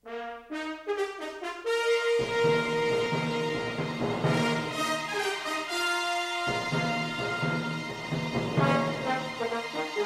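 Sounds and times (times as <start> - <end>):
brass fanfare: 0.0 - 10.0.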